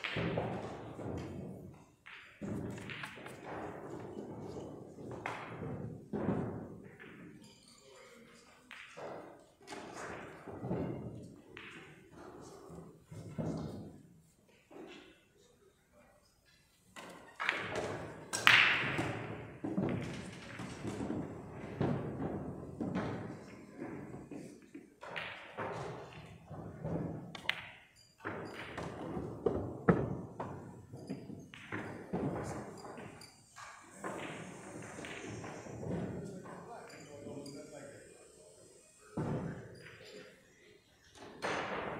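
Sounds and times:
pool balls clicking: 17.0 - 36.6.

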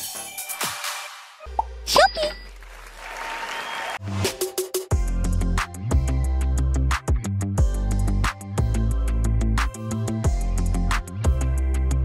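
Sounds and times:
music with a steady beat: 4.2 - 12.0.

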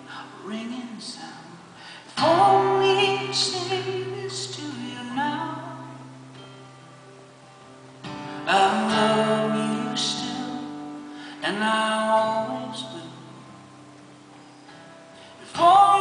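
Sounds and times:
man singing wordless notes: 0.0 - 6.1, 8.4 - 13.8, 15.4 - 16.0
acoustic guitar: 0.0 - 16.0.

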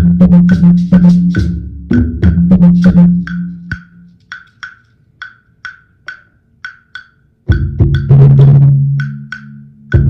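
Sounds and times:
deep drums: 0.0 - 4.0, 7.5 - 9.1.

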